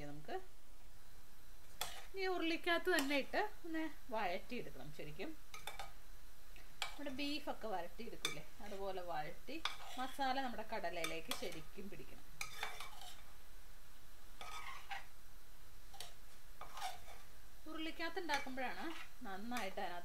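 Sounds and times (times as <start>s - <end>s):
metal spatula scraping pan: 1.8s - 2.1s, 9.6s - 11.7s, 12.4s - 13.3s, 14.4s - 15.2s, 15.9s - 17.3s, 18.1s - 19.8s.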